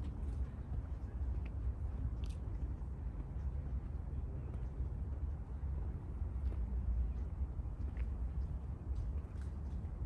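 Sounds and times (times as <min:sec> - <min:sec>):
low outdoor background rumble: 0:00.0 - 0:10.0.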